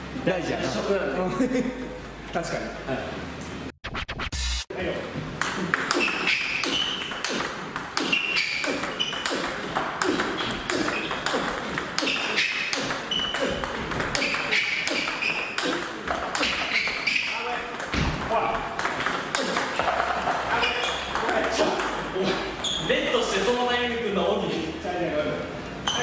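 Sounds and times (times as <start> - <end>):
ping-pong balls bouncing and struck: 5.4 - 23.3.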